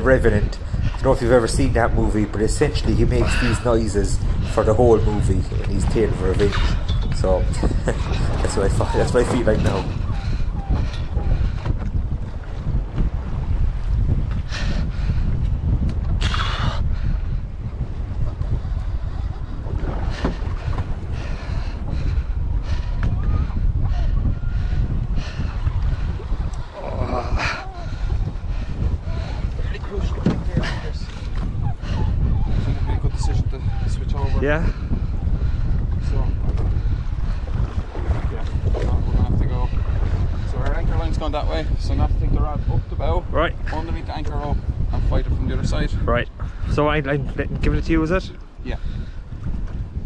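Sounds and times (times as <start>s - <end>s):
wind buffeting microphone: 0.0s - 50.0s
man grunting and breathing heavily: 26.7s - 29.5s.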